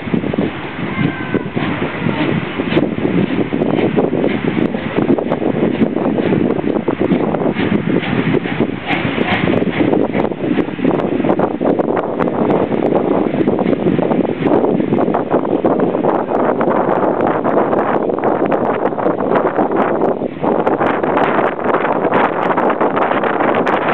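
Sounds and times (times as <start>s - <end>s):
steam train running: 0.0s - 23.9s
train clicks: 0.0s - 23.9s
wind buffeting microphone: 0.0s - 23.9s.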